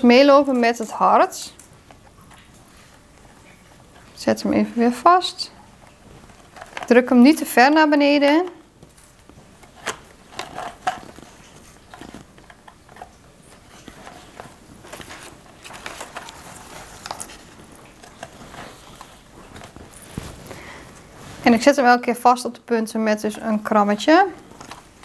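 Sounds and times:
ribbon rustling and crinkling: 5.6s - 21.6s.

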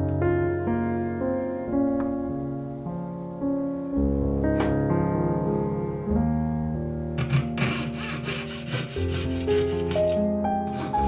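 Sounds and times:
soft piano music: 0.0s - 11.0s
rasping on metal ring: 7.2s - 11.0s.

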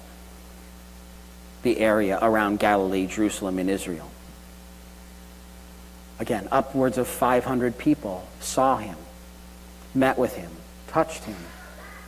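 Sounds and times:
electrical mains hum: 0.0s - 12.0s
faint hiss: 0.0s - 12.0s.

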